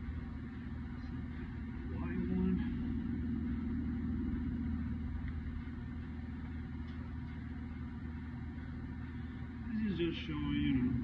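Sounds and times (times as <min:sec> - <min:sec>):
machinery humming: 0:00.0 - 0:11.0.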